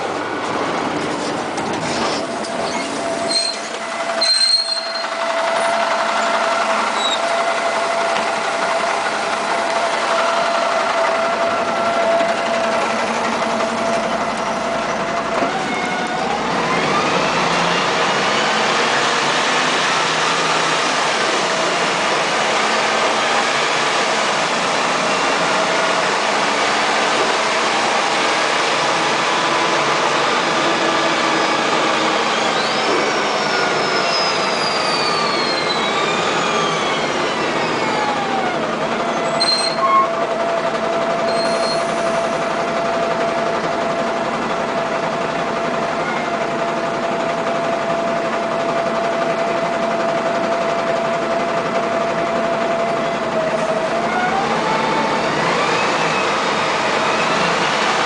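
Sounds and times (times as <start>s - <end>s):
bus engine and transmission whine: 0.0s - 58.0s
bus engine humming: 0.0s - 58.0s.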